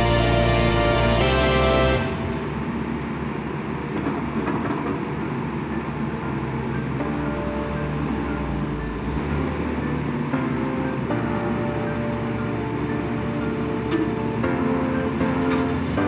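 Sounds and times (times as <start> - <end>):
background music: 0.0 - 3.3, 6.4 - 16.0.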